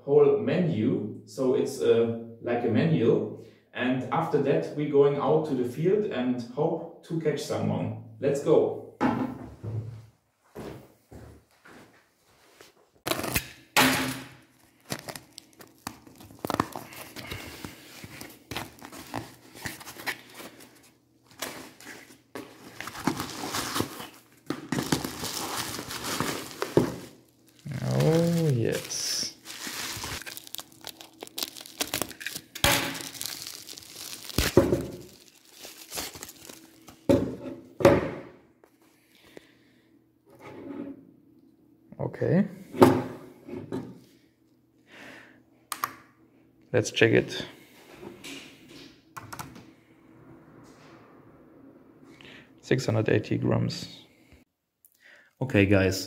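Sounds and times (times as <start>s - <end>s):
packing tape tearing: 13.0s - 13.6s, 14.5s - 37.0s
cardboard crumpling and rustling: 14.5s - 37.1s.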